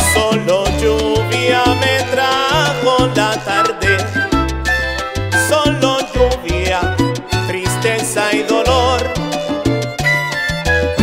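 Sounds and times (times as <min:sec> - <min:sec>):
bass line: 0:00.0 - 0:11.0
latin percussion: 0:00.0 - 0:11.0
salsa music: 0:00.0 - 0:11.0.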